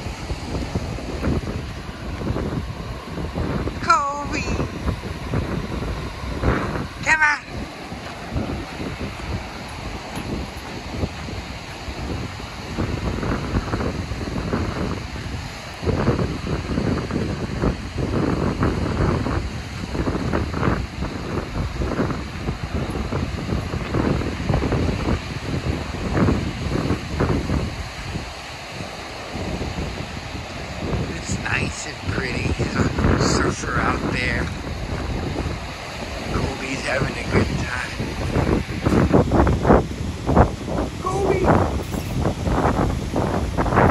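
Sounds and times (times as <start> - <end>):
ocean surf: 0.0 - 43.9
wind buffeting microphone: 0.0 - 43.9.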